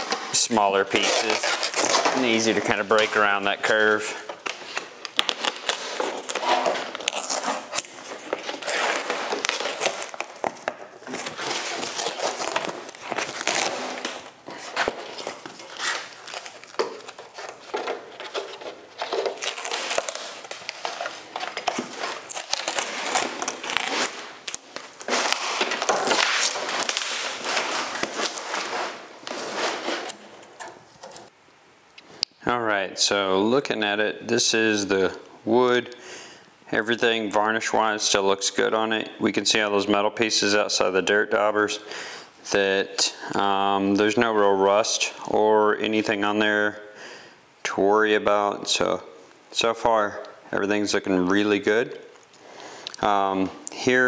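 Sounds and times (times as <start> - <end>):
fabric ripping and crackling: 0.0 - 30.3.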